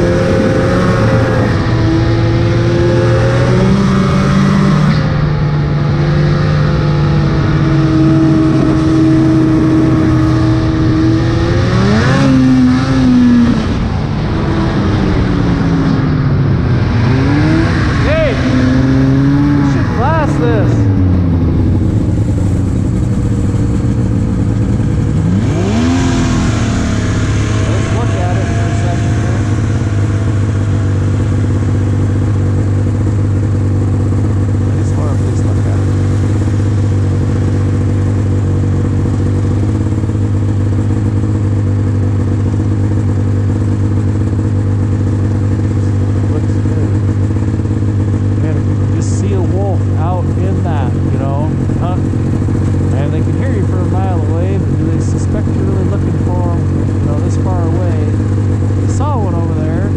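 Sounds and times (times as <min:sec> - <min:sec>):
snowmobile engine: 0:00.0 - 0:59.9.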